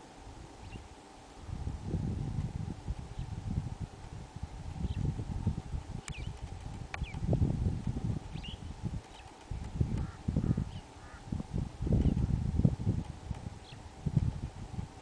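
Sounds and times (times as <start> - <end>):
wind buffeting microphone: 0.3 - 15.0
faint bird chirps: 0.6 - 0.9, 8.3 - 11.3.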